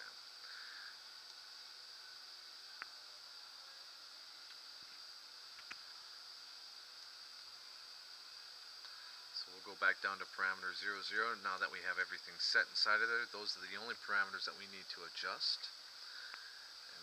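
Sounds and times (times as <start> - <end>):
steady high hiss: 0.0 - 17.0.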